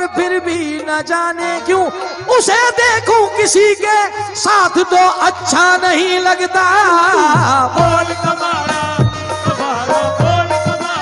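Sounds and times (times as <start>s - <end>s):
harmonium drone: 0.0s - 11.0s.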